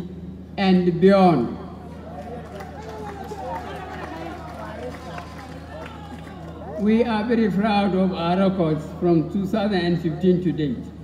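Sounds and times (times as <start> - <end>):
steady low hum: 0.0 - 11.0
crowd of overlapping voices: 1.3 - 11.0.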